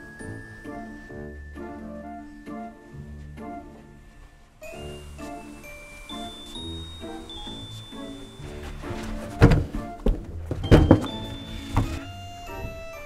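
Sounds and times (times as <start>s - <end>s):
background music: 0.0s - 13.0s
suitcase thudding: 8.6s - 12.1s.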